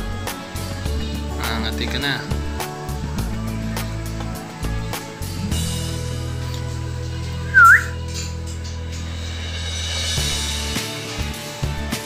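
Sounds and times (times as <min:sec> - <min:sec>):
background music with low tones: 0:00.0 - 0:12.0
short loud whistle: 0:07.5 - 0:08.0.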